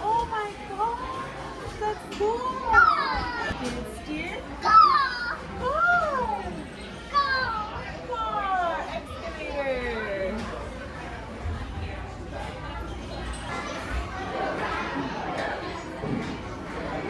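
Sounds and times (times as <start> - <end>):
play area noise: 0.0 - 17.0
children calling and squealing: 1.9 - 3.8, 4.6 - 8.0.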